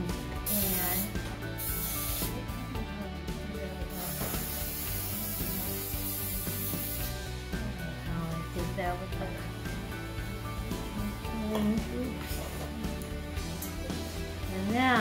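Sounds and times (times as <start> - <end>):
background music: 0.0 - 15.0
aerosol spray hissing: 0.4 - 2.5, 3.9 - 7.4.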